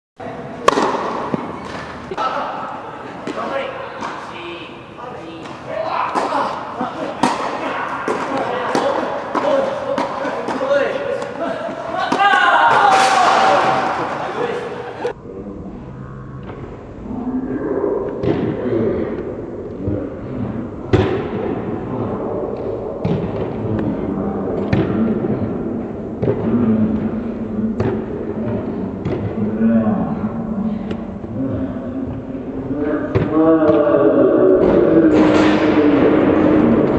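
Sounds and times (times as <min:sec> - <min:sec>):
racket striking tennis ball: 0:00.6 - 0:01.9.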